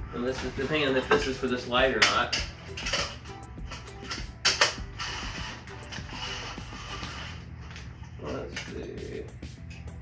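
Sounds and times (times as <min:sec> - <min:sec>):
metal rods clicking and rattling: 0:00.3 - 0:06.5.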